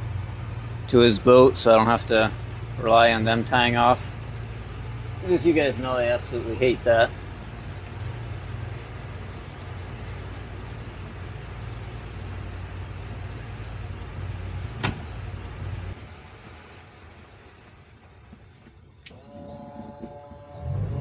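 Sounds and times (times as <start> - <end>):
boat engine running: 0.0 - 21.0.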